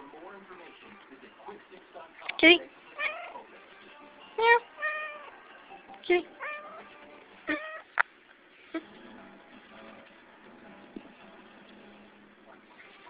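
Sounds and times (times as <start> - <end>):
cat meowing: 3.0 - 3.4, 4.8 - 5.3, 6.4 - 7.9.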